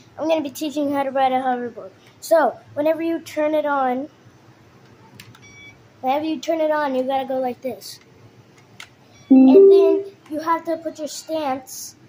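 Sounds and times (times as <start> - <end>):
short high electronic beep: 9.3 - 10.1.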